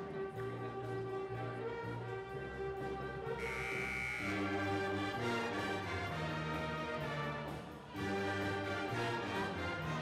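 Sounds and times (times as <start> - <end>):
instrumental music held notes: 3.3 - 6.6.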